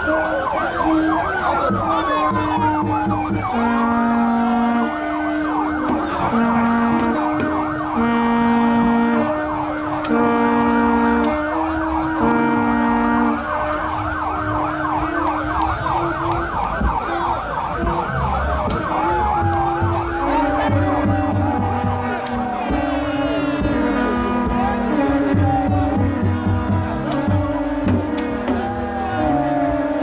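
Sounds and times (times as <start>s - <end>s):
long steady tones: 0.0s - 30.0s
police siren yelping: 0.0s - 30.0s.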